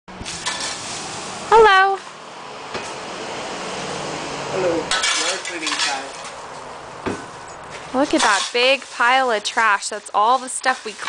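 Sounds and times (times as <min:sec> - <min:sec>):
shovel scraping on concrete: 0:00.2 - 0:01.4, 0:04.9 - 0:11.0.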